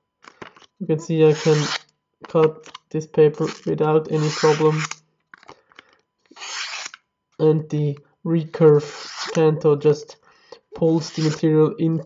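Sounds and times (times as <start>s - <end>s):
blade slicing paper: 1.3s - 1.8s, 3.4s - 5.0s, 6.3s - 7.0s, 8.8s - 9.4s, 11.0s - 11.4s.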